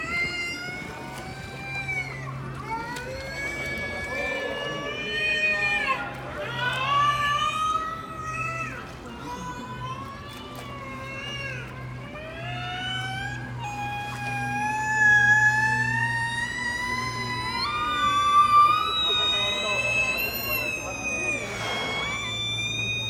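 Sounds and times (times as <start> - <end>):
killer whale calling: 0.0 - 23.0.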